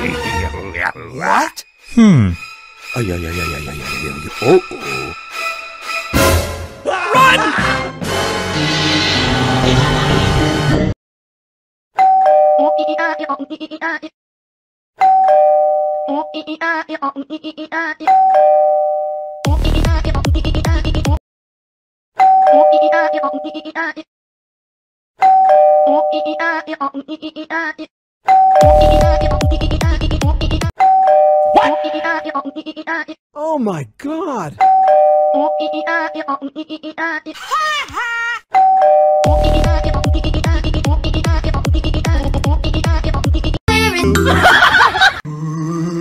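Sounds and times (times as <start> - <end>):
high-pitched cartoonish voice: 12.6 - 14.1, 16.0 - 18.2, 22.5 - 24.1, 25.8 - 27.9, 31.5 - 34.6, 35.3 - 38.4, 39.4 - 44.4
high voice chanting syllables: 33.4 - 34.6.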